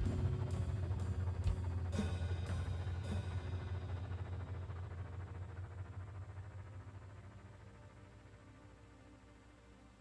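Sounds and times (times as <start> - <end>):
low synth bass tone: 0.0 - 9.2
faint higher synth notes: 0.0 - 10.0.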